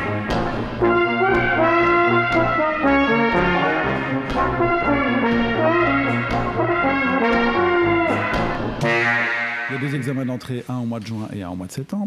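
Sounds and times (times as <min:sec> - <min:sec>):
low accompaniment with regular beat: 0:00.0 - 0:10.7
trombone melody: 0:00.0 - 0:10.7.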